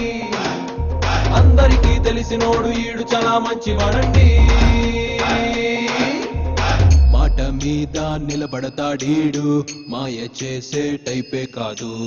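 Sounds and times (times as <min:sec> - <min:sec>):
backing music: 0:00.0 - 0:09.8
film song vocals: 0:00.0 - 0:12.0
deep bass sound: 0:00.8 - 0:03.0, 0:03.7 - 0:05.6, 0:06.4 - 0:08.4.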